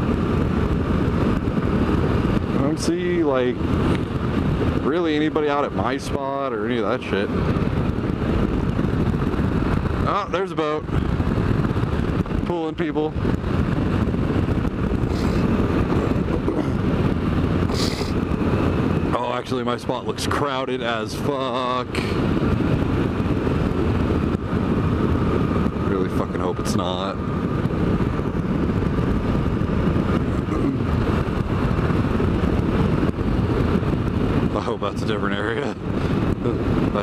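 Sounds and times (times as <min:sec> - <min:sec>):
wind rushing over microphone: 0:00.0 - 0:37.0
motorcycle engine running: 0:20.9 - 0:37.0.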